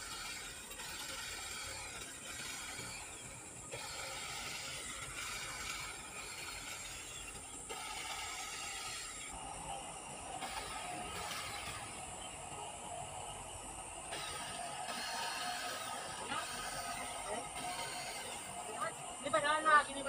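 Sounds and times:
electric hedge trimmer buzzing: 0:00.0 - 0:20.0.

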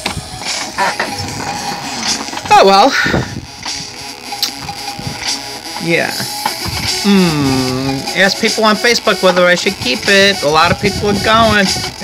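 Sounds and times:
ambient music: 0:00.0 - 0:12.0.

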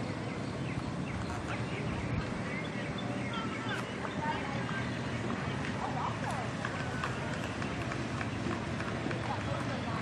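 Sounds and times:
faint distant voices: 0:00.0 - 0:10.0
outdoor background noise: 0:00.0 - 0:10.0.

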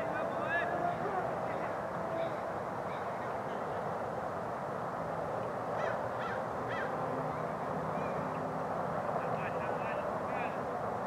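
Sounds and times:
outdoor background noise: 0:00.0 - 0:11.0
crow cawing: 0:05.8 - 0:07.0.

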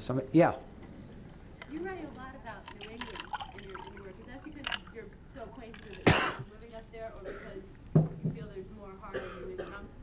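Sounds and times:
man coughing: 0:06.1 - 0:06.4, 0:09.1 - 0:09.9.

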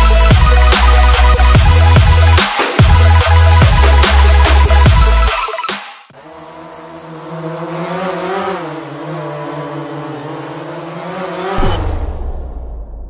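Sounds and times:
buzzy motor hum: 0:06.1 - 0:11.8
low whoosh and boom: 0:11.6 - 0:13.0.

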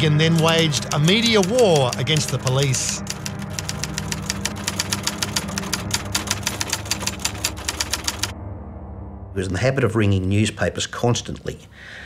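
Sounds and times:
typewriter keys clacking: 0:00.1 - 0:08.3.

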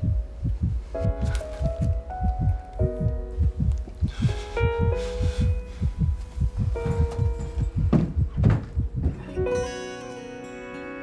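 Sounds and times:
heartbeat thuds: 0:00.0 - 0:09.3.

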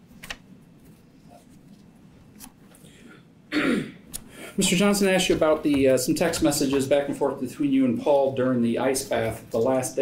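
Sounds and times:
person clearing throat: 0:03.0 - 0:04.1.

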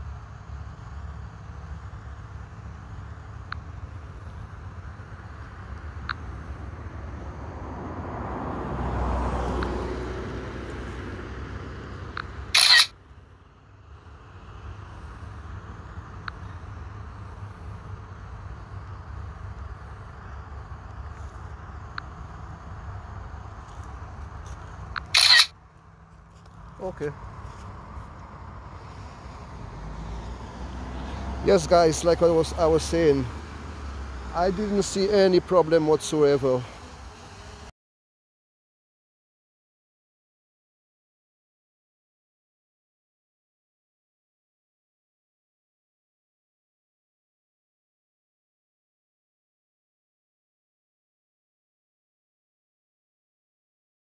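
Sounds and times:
low outdoor rumble: 0:00.0 - 0:37.7
camera shutter sounds: 0:12.2 - 0:13.0, 0:24.9 - 0:25.6.

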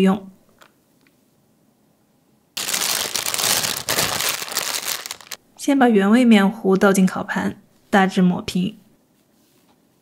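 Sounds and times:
plastic piping bag crinkling: 0:02.6 - 0:05.4.

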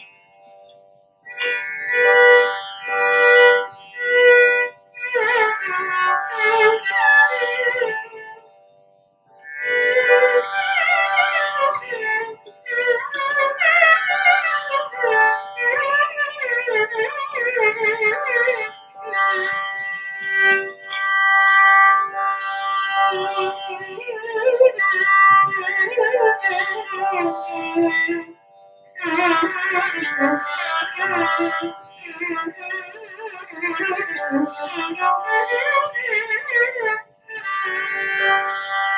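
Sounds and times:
violin playing ornamented melody: 0:01.3 - 0:08.5, 0:09.4 - 0:38.9.

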